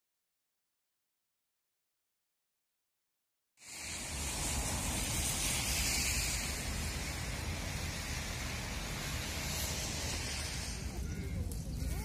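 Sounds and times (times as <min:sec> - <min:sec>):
outdoor background hiss and rumble: 0:03.6 - 0:12.0.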